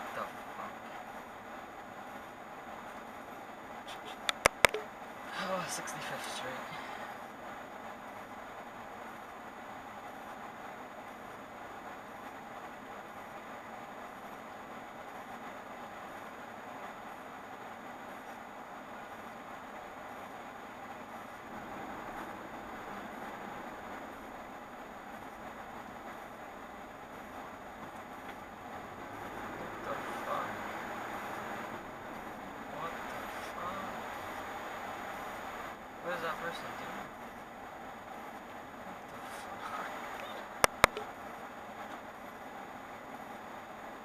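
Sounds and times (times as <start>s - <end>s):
street traffic noise: 0.0s - 44.0s.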